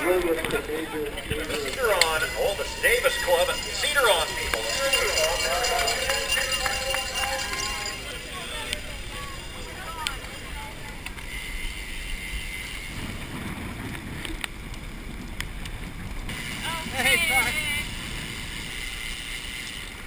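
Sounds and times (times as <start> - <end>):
several voices: 0.0 - 11.4
wind rushing on microphone: 12.1 - 19.6.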